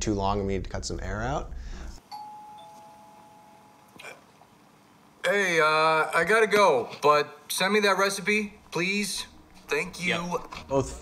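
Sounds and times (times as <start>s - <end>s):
two-note doorbell chime: 2.1s - 3.9s.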